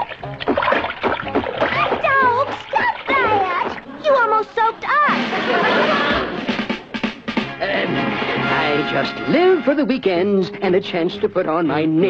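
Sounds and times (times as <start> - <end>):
cartoon water splash: 0.0 - 3.9.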